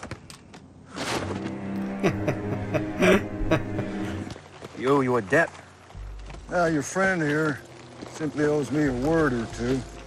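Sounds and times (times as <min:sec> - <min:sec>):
low humming drone: 0:01.2 - 0:04.4
man chuckling: 0:01.8 - 0:04.3.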